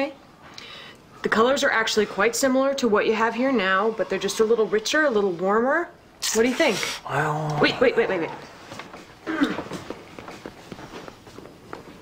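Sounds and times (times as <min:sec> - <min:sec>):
quick footsteps on hard floor: 0:08.6 - 0:12.0.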